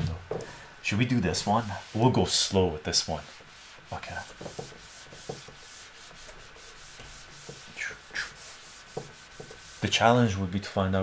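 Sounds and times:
eraser rubbing on whiteboard: 1.2 - 10.1.

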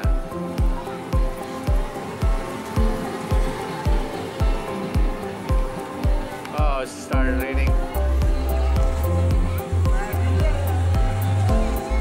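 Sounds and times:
music with low beat: 0.0 - 12.0.

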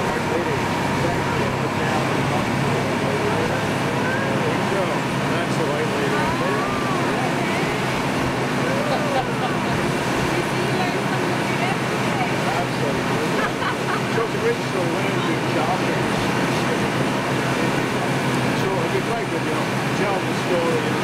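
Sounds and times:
boat engines running: 0.0 - 21.0
churning wake: 0.0 - 21.0
faint voices: 0.0 - 21.0.

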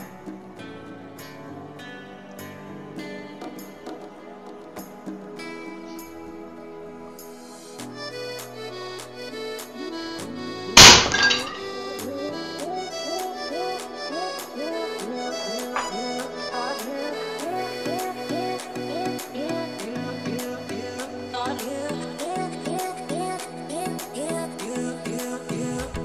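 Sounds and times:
accordion background music: 0.0 - 26.0
pellet striking metal plates: 10.8 - 11.8
plates clattering: 10.8 - 11.8, 15.8 - 16.0.

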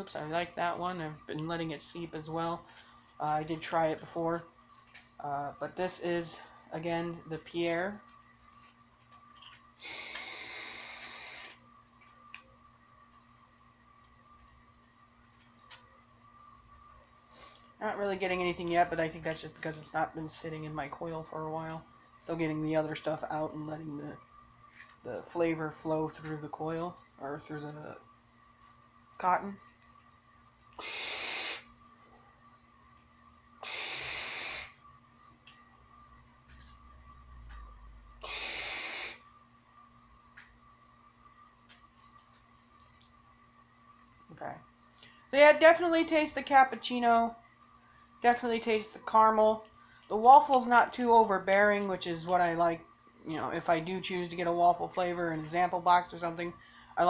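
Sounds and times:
hissing draw of air through vape: 9.8 - 11.6, 30.8 - 31.8, 33.6 - 34.8, 38.2 - 39.3.

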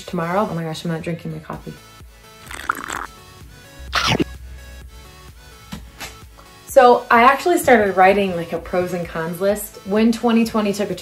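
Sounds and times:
background music: 0.0 - 11.0
wet slurp from cup: 2.4 - 3.1, 3.8 - 4.3
bite into sandwich: 4.0 - 4.3.

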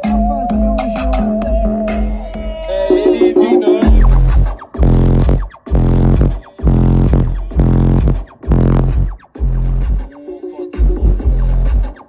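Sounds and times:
loud music with heavy bass: 3.8 - 10.0.

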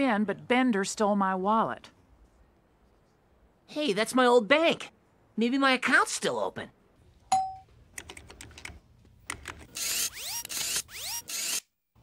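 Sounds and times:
computer keyboard clicks: 8.0 - 9.7.

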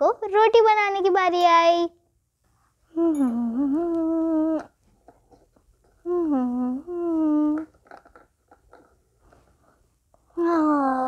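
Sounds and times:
girl humming: 2.9 - 4.8, 6.0 - 7.8, 10.4 - 11.0.

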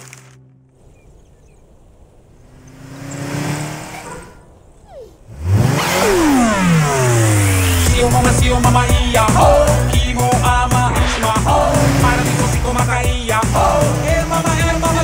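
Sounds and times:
cartoon car speeding past: 2.5 - 4.3, 5.3 - 9.8, 10.6 - 13.9.

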